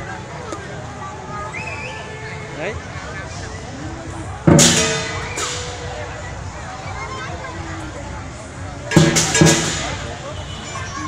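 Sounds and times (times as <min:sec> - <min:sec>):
cymbals and gong crashing: 0:04.5 - 0:06.1, 0:08.9 - 0:10.2.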